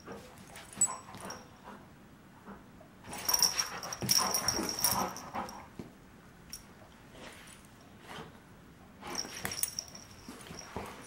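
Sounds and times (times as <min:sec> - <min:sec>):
dogs scuffling: 0:03.1 - 0:05.6.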